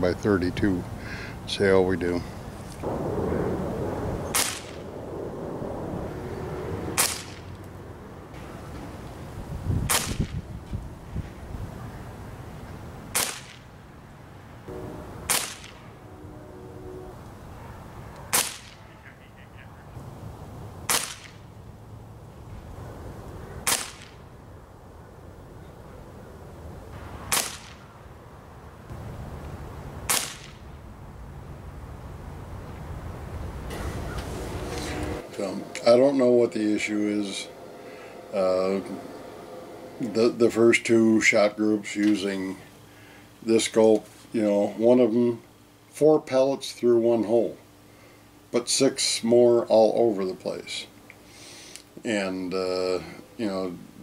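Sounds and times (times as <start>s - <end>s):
air rifle shots cracking: 2.8s - 5.0s, 6.9s - 7.6s, 9.9s - 10.4s, 13.1s - 13.7s, 15.2s - 15.9s, 18.2s - 18.9s, 20.8s - 21.4s, 23.6s - 24.3s, 27.2s - 27.9s, 30.0s - 30.8s.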